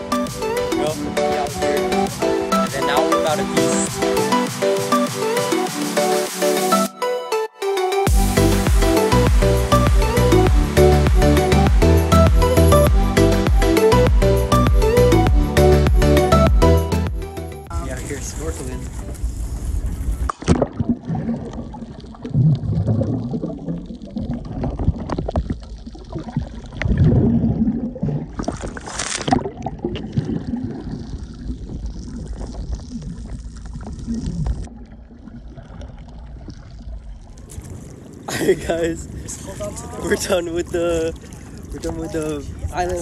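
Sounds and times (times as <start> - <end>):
wind and water noise: 0.0 - 6.6, 17.7 - 43.0
muffled underwater sloshing: 18.2 - 43.0
rush of bubbles: 20.2 - 42.8.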